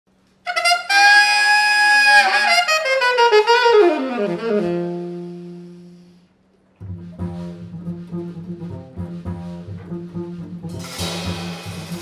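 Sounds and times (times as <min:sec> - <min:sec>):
alto saxophone jazz phrase: 0:00.5 - 0:12.0.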